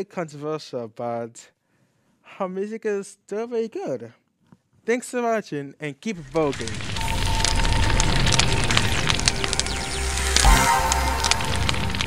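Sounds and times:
crackling flames: 6.2 - 12.0
fire whoosh: 6.2 - 12.0
low rumble: 6.2 - 12.0.

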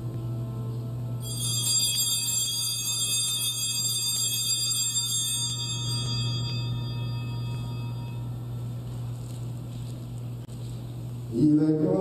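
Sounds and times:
small high-pitched bells shaken: 1.2 - 8.4.

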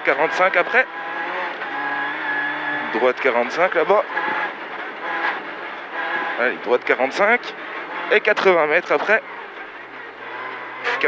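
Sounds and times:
car engine at high revs: 0.0 - 11.0
road noise: 0.0 - 11.0.

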